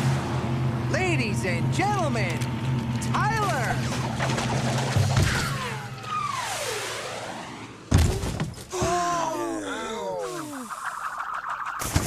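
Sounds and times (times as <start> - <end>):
motorboat drone: 0.0 - 8.0
splash: 3.6 - 5.8.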